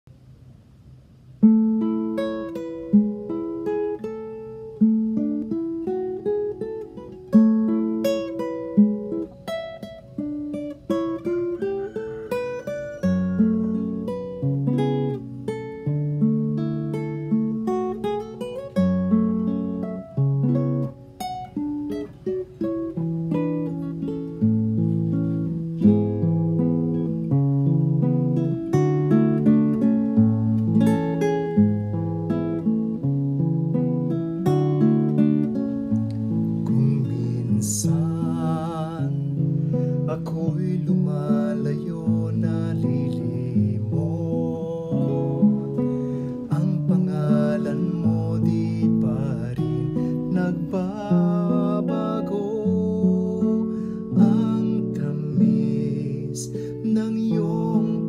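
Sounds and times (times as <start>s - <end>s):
classical guitar arpeggios: 1.4s - 58.0s.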